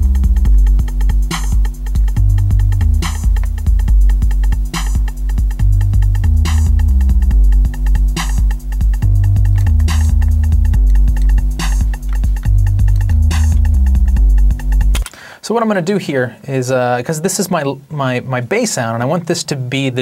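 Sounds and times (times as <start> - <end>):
programmed drum track: 0.0 - 15.0
synth bass line: 0.0 - 15.0
ticking hi-hats: 0.0 - 15.1.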